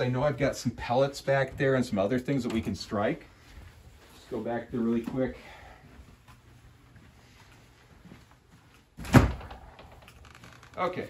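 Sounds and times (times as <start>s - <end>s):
background noise: 0.0s - 11.0s
door thudding open: 9.0s - 10.1s.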